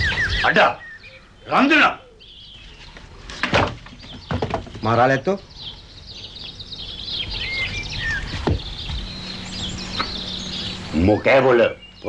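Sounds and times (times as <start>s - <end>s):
birds chirping and twittering: 0.0s - 12.0s.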